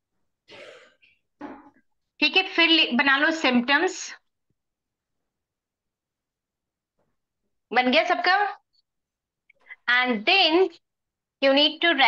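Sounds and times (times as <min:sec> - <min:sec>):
person clearing throat: 0:00.5 - 0:01.8.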